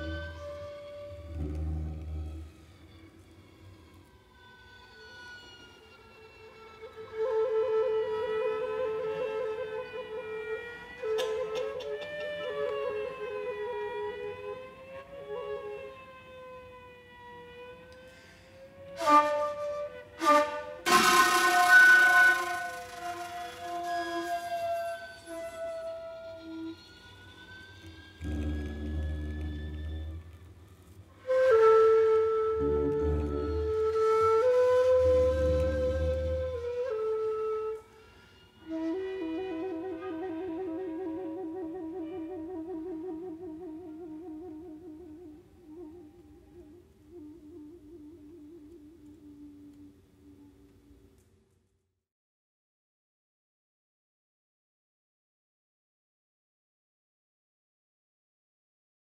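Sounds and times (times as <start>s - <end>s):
low cello note: 0.0s - 3.2s, 27.8s - 30.9s, 32.4s - 34.0s
held string tones: 0.0s - 4.0s, 20.2s - 31.5s
thin high rising note: 20.8s - 30.4s.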